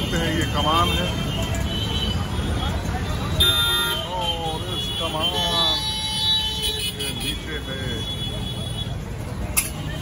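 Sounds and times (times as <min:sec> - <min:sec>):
passers-by talking: 0:00.0 - 0:10.0
road traffic rumble: 0:00.0 - 0:10.0.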